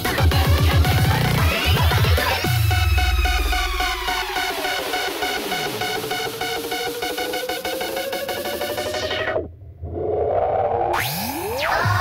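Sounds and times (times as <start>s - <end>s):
filtered electronic dance music: 0.0s - 9.6s, 10.6s - 12.0s.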